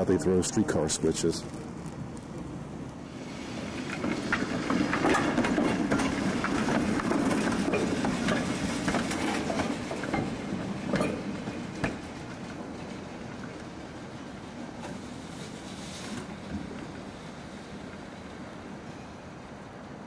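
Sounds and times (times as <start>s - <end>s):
steel wheels clicking over rails: 0.0s - 18.8s
streetcar rolling past: 0.0s - 20.0s.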